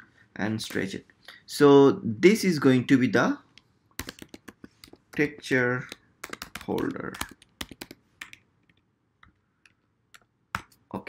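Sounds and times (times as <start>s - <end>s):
typing on keyboard: 4.0s - 8.8s.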